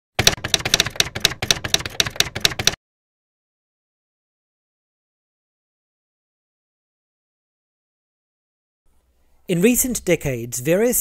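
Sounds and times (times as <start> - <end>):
typewriter keys clacking: 0.2 - 2.8.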